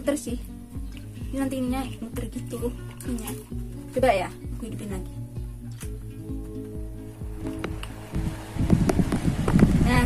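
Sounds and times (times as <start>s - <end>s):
background music with steady beat: 0.0s - 9.4s
fan wind buffeting microphone: 6.8s - 10.0s.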